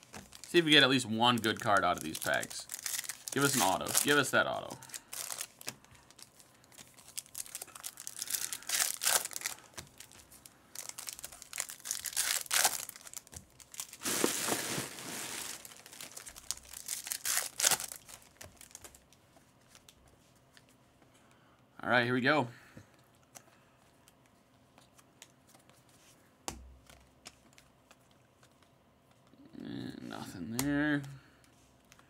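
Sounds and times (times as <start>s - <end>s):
foil wrappers crinkling: 0.0s - 20.1s.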